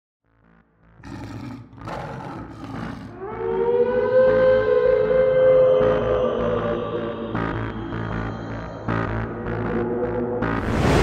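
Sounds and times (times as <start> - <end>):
monster roar: 1.0 - 3.3
eerie music: 1.0 - 11.0.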